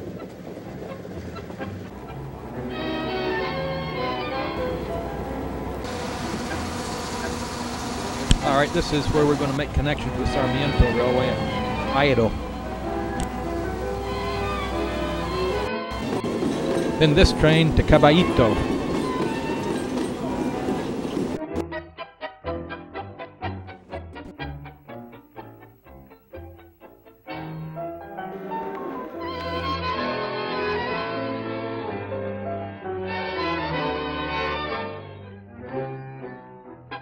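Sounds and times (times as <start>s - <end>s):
train rumbling with hiss: 0.0s - 21.6s, 28.2s - 29.6s
background music: 0.0s - 37.0s.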